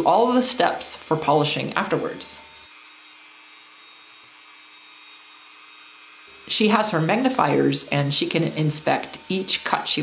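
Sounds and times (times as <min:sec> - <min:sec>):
small motor whirring: 0:00.0 - 0:10.0.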